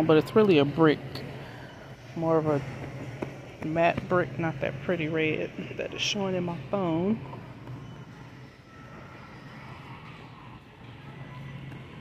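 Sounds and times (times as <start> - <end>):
distant bustle of activity: 0.0 - 12.0
steady low hum: 0.0 - 12.0.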